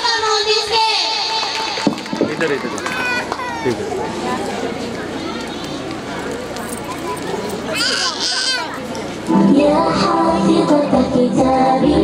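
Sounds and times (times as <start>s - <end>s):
girls talking and calling: 2.5s - 10.5s.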